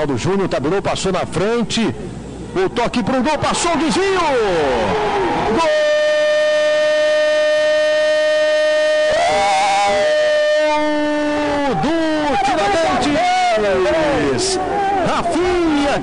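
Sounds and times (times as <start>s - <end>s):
commentator shouting goal call: 5.6s - 6.6s, 9.0s - 16.0s.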